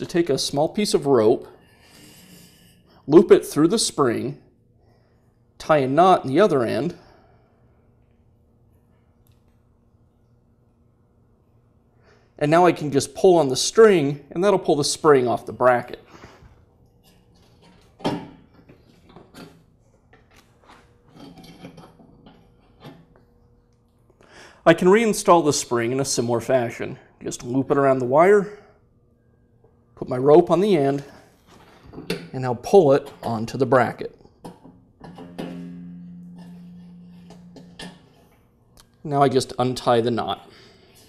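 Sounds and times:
metal spring clank: 35.0 - 38.4.

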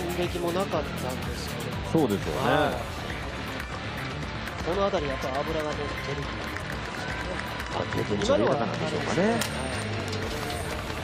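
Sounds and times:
background music: 0.0 - 11.0
outdoor street ambience: 0.0 - 11.0.

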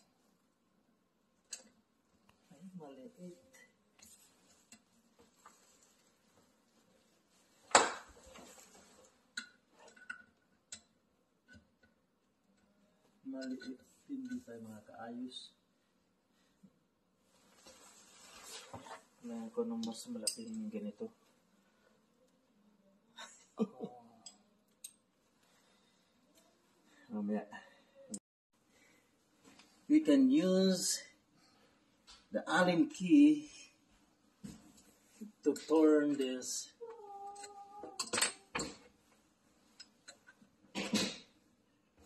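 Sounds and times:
man speaking: 13.3 - 15.6, 19.2 - 21.1, 27.1 - 27.7, 29.9 - 31.2, 32.3 - 33.8, 35.2 - 36.8.

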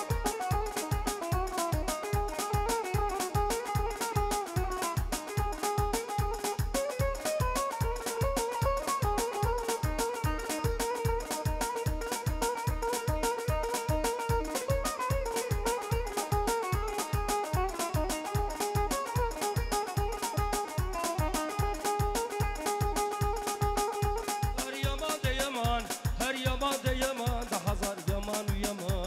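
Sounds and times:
band playing dance music: 0.0 - 29.0
fast steady drum beat: 0.0 - 29.0.

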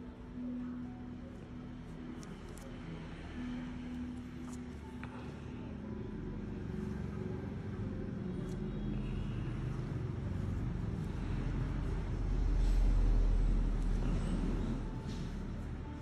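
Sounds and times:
low background rumble: 0.0 - 16.0.

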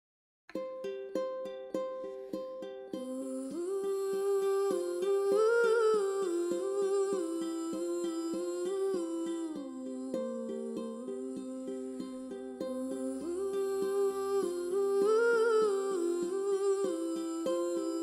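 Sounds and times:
ukulele plucked: 0.5 - 18.0
soft hummed melody: 2.9 - 18.0.

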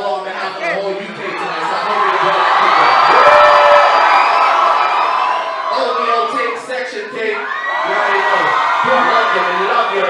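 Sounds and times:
crowd screaming and cheering: 0.4 - 10.0.

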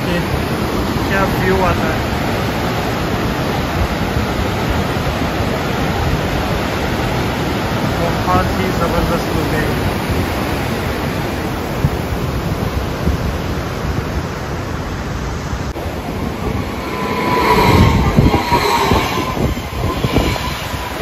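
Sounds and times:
electric train passing: 15.8 - 21.0
train wheel whine and clatter: 15.8 - 21.0.

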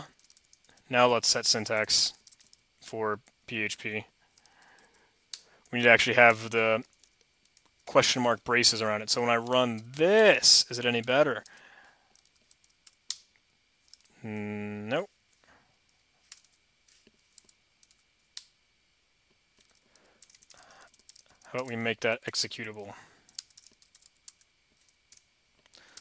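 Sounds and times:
computer keyboard keystrokes: 0.2 - 0.8, 19.6 - 21.4, 23.3 - 25.2.

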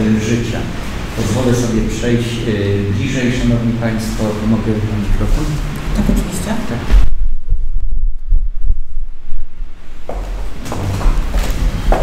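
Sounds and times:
microphone handling thumps: 6.0 - 12.0.

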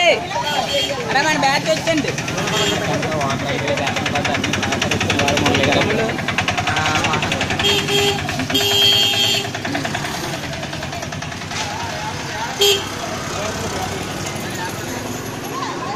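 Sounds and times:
people talking: 0.0 - 15.9
small vehicle engine running: 0.0 - 15.9.

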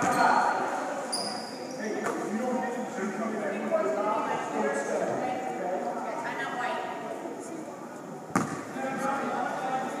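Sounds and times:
voices in a gym: 0.0 - 10.0.

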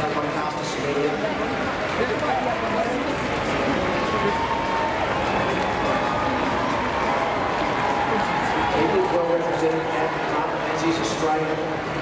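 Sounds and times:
faint echoing public-address voice: 0.0 - 12.0
stadium crowd murmur: 0.0 - 12.0.

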